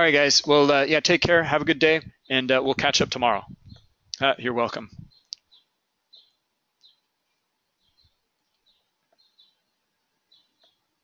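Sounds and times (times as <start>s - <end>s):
bird chirping faintly: 1.9s - 11.0s.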